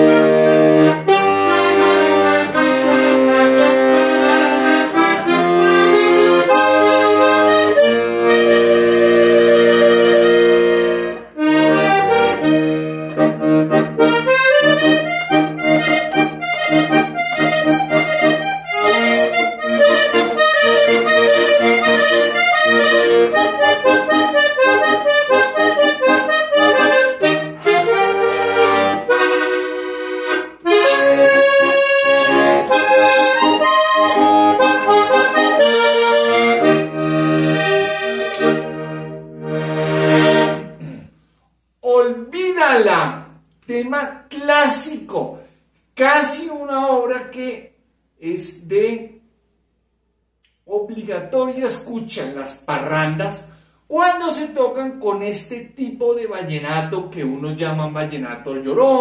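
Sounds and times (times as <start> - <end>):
button accordion playing: 0.0 - 40.9.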